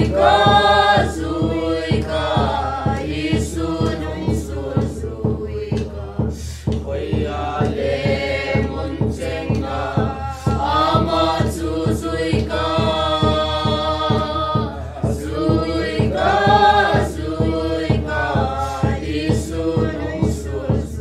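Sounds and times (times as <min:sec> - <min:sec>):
group singing a hymn: 0:00.0 - 0:21.0.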